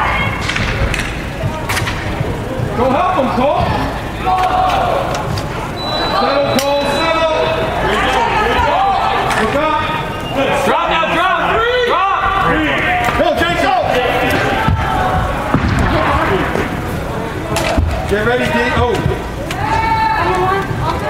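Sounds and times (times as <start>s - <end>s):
people shouting in indoor arena: 0.0s - 0.9s, 2.7s - 16.8s, 17.6s - 21.0s.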